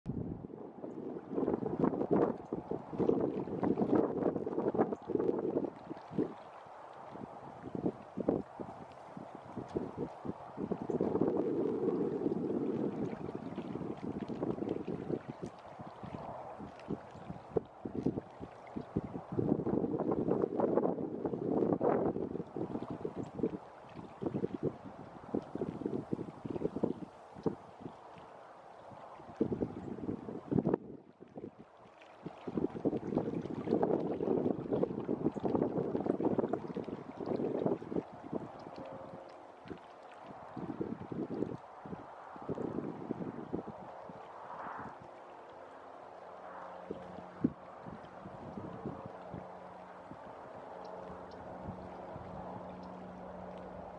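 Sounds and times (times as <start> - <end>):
wind buffeting microphone: 0.0 - 53.9
small waves lapping against log: 1.1 - 53.9.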